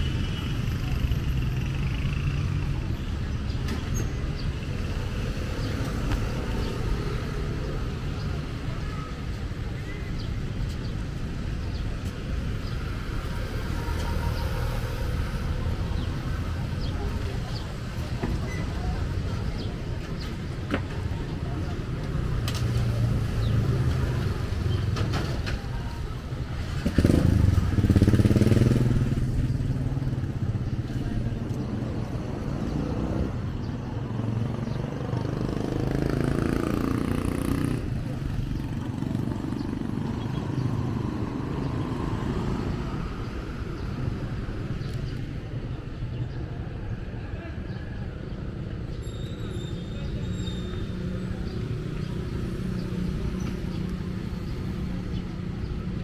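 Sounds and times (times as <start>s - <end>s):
road traffic rumble: 0.0s - 56.0s
motorcycle passing close by: 26.7s - 30.2s, 35.2s - 42.3s.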